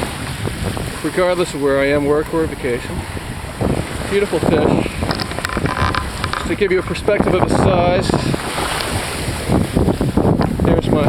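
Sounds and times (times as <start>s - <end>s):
seawater running up sand: 0.0s - 11.0s
small surf on shoreline: 0.0s - 11.0s
wind buffeting microphone: 0.0s - 11.0s.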